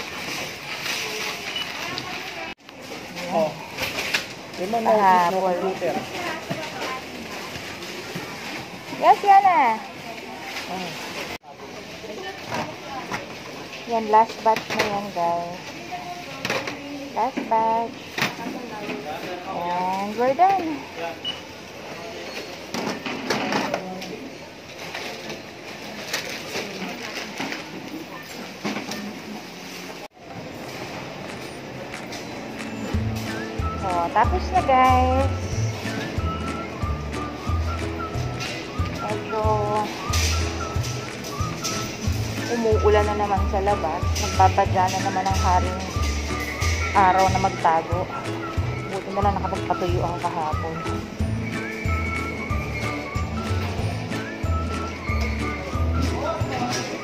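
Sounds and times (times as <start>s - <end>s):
groceries clattering at checkout: 0.0s - 57.0s
shop noise: 0.0s - 57.0s
store hum: 0.0s - 57.0s
background music: 32.6s - 57.0s.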